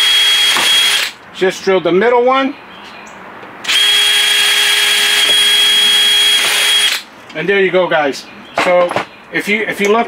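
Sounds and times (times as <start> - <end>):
cordless drill boring through pipe: 0.0 - 1.2, 3.7 - 7.0.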